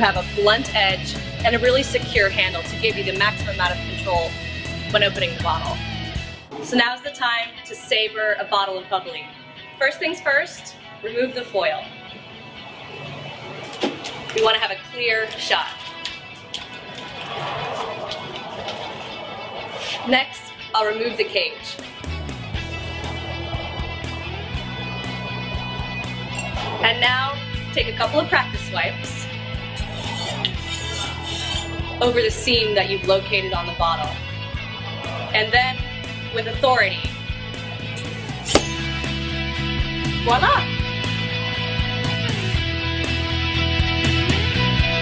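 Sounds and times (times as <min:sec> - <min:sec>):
background music: 0:00.0 - 0:45.0
bottle neck cracking off: 0:37.9 - 0:39.2.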